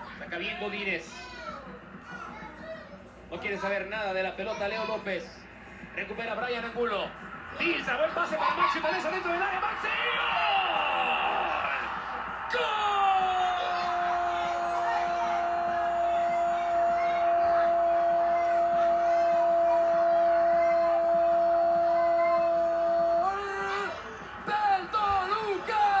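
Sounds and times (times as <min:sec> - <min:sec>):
excited commentary: 0:00.0 - 0:26.0
faint crowd: 0:00.0 - 0:26.0.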